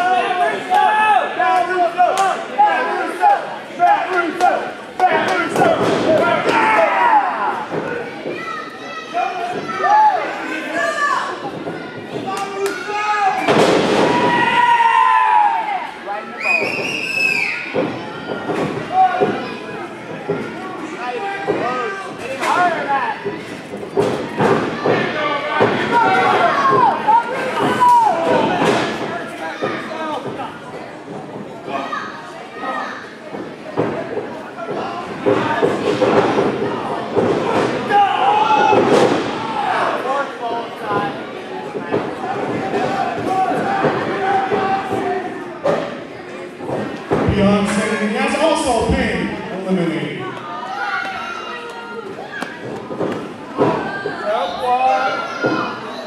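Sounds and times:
crowd cheering and shouting: 0.0 - 19.6, 24.4 - 30.3, 37.5 - 40.2.

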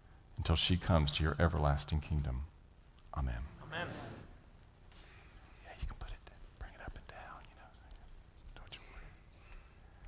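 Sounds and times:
faint whispered voices: 5.6 - 9.3.

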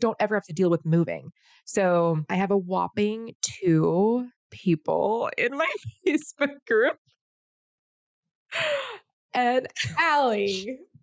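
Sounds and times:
woman's breathy laughing sigh: 8.6 - 9.0.

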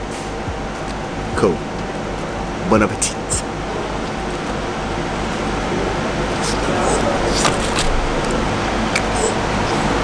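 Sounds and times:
ventilation hum: 0.0 - 10.0.

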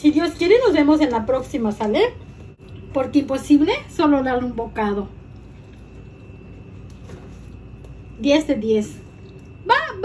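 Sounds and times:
faint high whine: 0.0 - 10.0
low background hum: 0.0 - 10.0.

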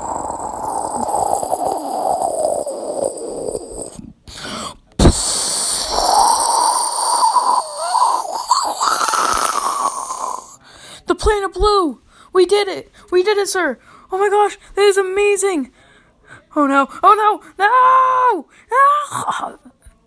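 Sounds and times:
wavering mouth tone: 0.0 - 4.1, 5.0 - 10.6
mouth crack sound effect: 5.0 - 10.6.

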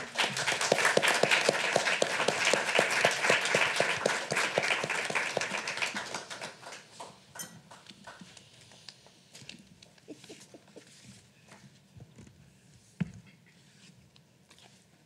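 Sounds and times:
audience applauding: 0.0 - 8.4.

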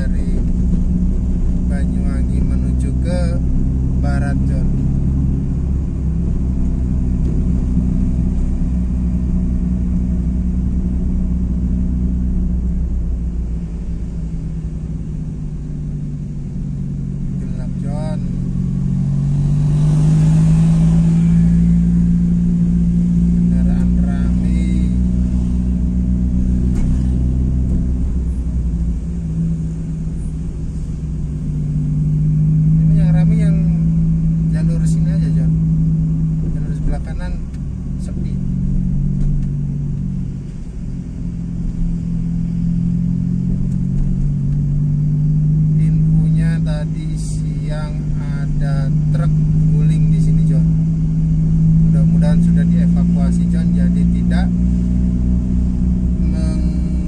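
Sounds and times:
car engine humming: 0.0 - 57.0.

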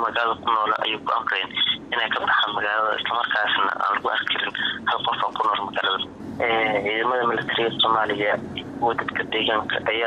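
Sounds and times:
person reading news: 0.0 - 10.0.

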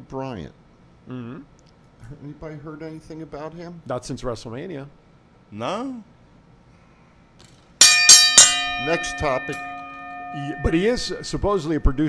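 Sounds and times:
ring bell struck: 7.8 - 12.0.

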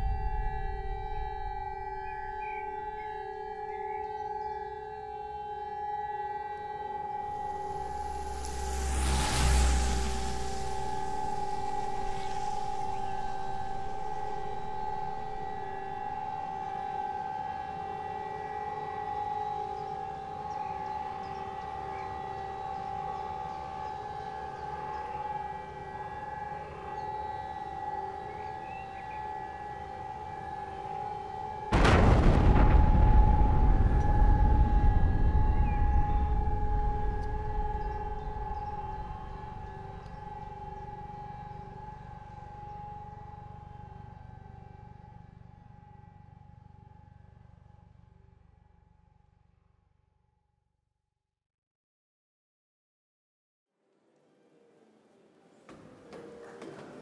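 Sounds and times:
deep rumbling boom: 0.0 - 3.0, 31.7 - 40.4
siren-like drone of two tones: 0.0 - 50.0
loud blast: 31.7 - 40.0.

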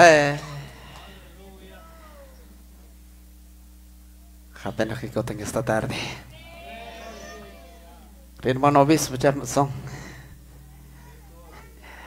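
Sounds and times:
low electrical hum: 0.0 - 12.0
faint meow-like cry: 6.4 - 8.0.

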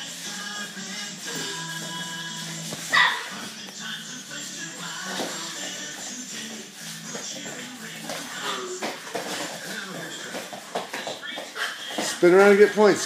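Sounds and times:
low background music: 0.0 - 13.0.

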